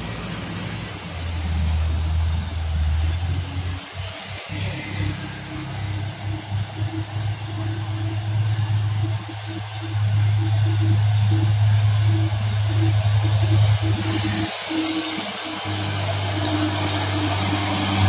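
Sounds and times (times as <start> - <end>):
truck diesel engine pulling uphill: 0.0 - 18.0
music: 4.4 - 18.0.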